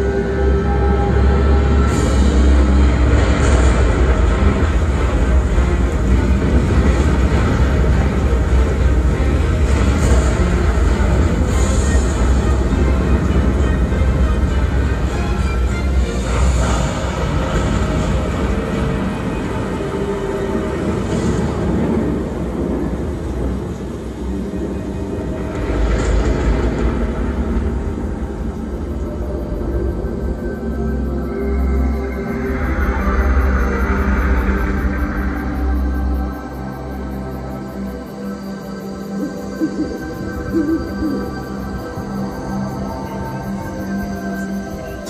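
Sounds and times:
deep rumbling soundtrack over loudspeakers: 0.0 - 45.0.

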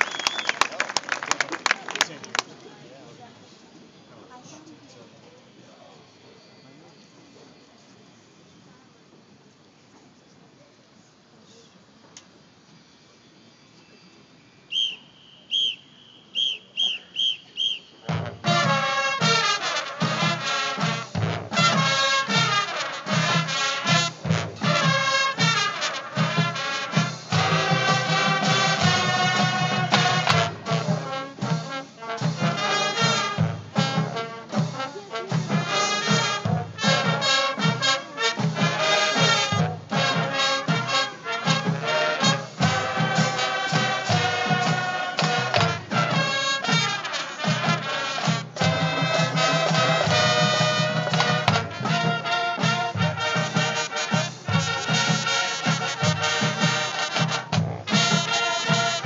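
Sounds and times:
brass horns playing melody: 18.1 - 59.0
steady drum beat: 18.1 - 59.0.

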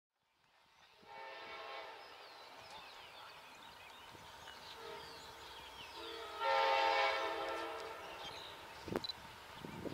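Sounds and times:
birds chirping: 0.4 - 9.9
distant train horn: 1.0 - 2.2, 4.7 - 8.7.

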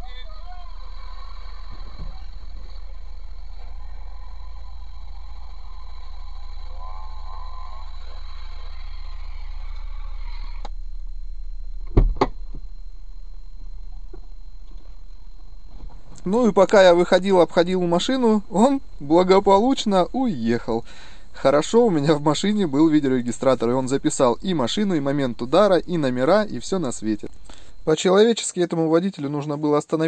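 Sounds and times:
vehicle cabin hum: 0.0 - 27.9
faint radio playing: 0.0 - 30.0
car bumping knocks: 11.8 - 12.6.

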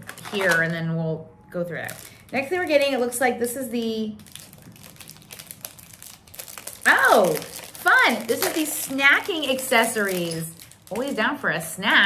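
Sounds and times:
plastic wrapping crinkling: 0.0 - 0.9, 1.8 - 12.0.

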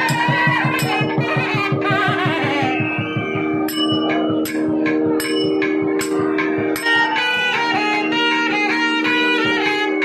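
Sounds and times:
bell-like metallic strikes: 0.0 - 8.4
light drum strokes: 0.0 - 9.8
steady drone: 0.0 - 10.0.

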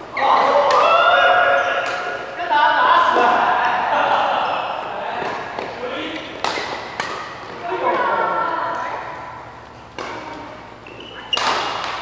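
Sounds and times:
voices calling out in echoing hall: 0.0 - 12.0
racket hitting shuttlecock: 5.2 - 7.6, 9.9 - 12.0.

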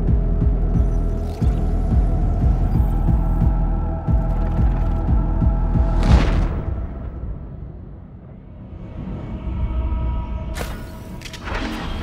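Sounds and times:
throbbing synth bass: 0.0 - 5.9.

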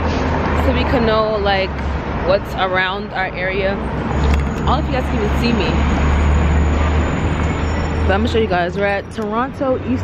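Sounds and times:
passing vehicles rumbling: 0.0 - 10.0.

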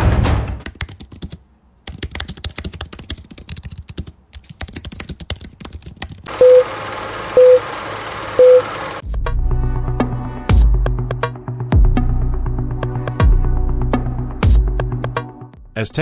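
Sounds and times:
computer keyboard typing: 0.6 - 7.6
short beeps: 6.4 - 6.7, 7.4 - 7.6, 8.4 - 8.7.

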